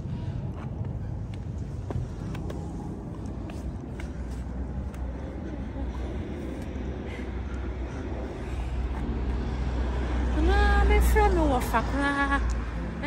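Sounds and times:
road traffic rumble: 0.0 - 13.0.

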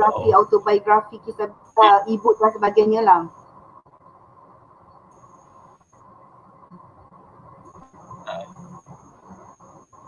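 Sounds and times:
background hiss and hum: 0.0 - 10.0
faint high whine: 0.0 - 10.0
faint steady tone: 0.0 - 10.0.

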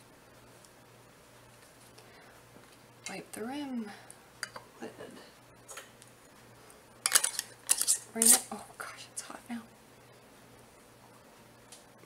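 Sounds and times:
metal-on-glass clinks and scrapes: 7.1 - 8.1.

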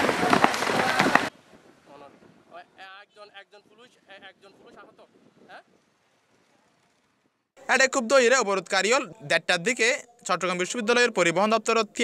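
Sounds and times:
sharp cracks: 0.0 - 1.4.

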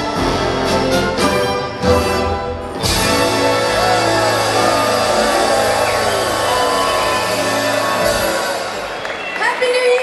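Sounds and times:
crowd noise: 0.0 - 10.0
live pop band and orchestra: 0.0 - 10.0.

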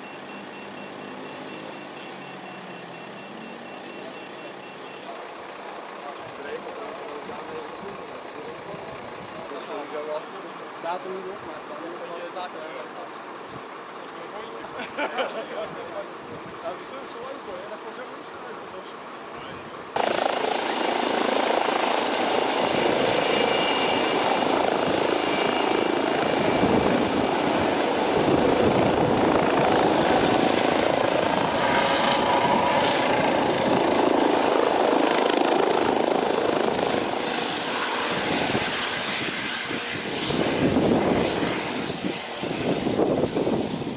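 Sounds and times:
helicopter rotor and turbine: 0.0 - 14.8, 15.5 - 43.9.

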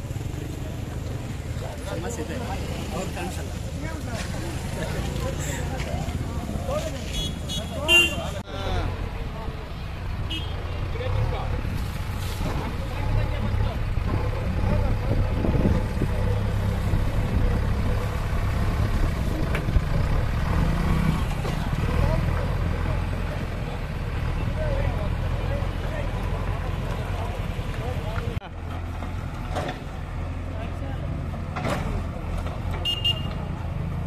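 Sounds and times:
people talking: 0.0 - 18.0, 21.4 - 28.6, 29.7 - 33.6
diesel engine rumbling: 0.0 - 34.0.

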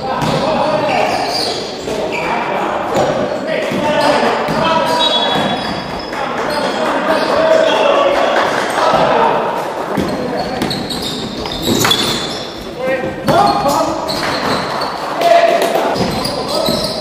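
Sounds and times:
basketball bouncing on wooden court: 9.9 - 12.4, 16.0 - 17.0
short high squeaks: 10.1 - 12.7.

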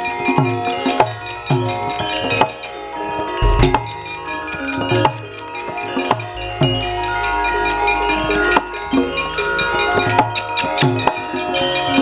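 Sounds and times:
gamelan metallophones ringing: 0.0 - 12.0
sharp knock: 3.4 - 4.0
drum strokes: 3.4 - 4.3.

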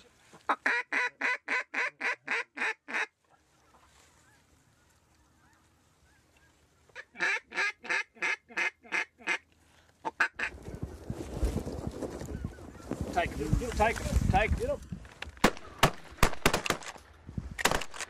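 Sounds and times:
duck call quacks: 0.4 - 3.1, 7.0 - 9.4, 10.0 - 10.5
faint bird calls: 3.2 - 7.2.

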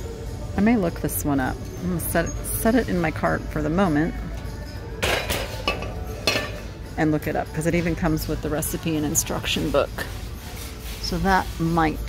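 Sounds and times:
dish clinking against wire cart: 4.3 - 8.4.

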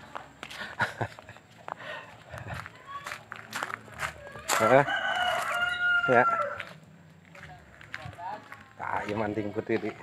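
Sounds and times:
rooster crowing: 4.6 - 6.8.

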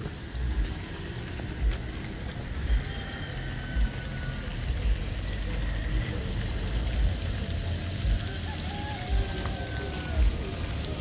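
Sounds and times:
car engines running: 0.0 - 11.0
tyres hissing on wet road: 0.0 - 11.0.

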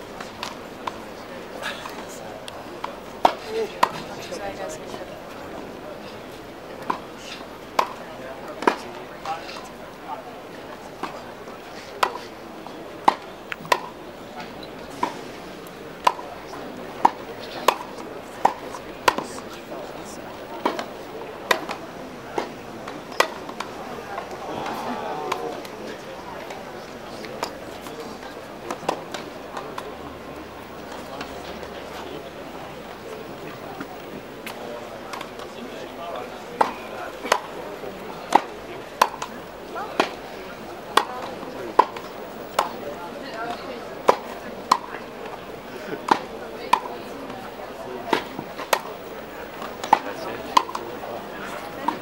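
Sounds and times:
murmur of spectators: 0.0 - 52.0
tennis ball struck by rackets: 13.0 - 13.9, 17.0 - 19.4, 20.6 - 20.9, 21.5 - 25.8, 38.3 - 39.4, 41.0 - 42.8, 46.1 - 47.4, 49.6 - 50.9.

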